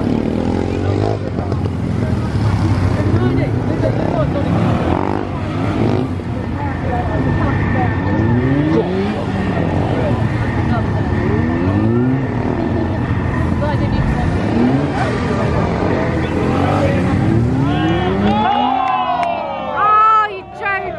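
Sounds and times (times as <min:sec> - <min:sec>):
motorcycle engine revving: 0:00.0 - 0:18.8.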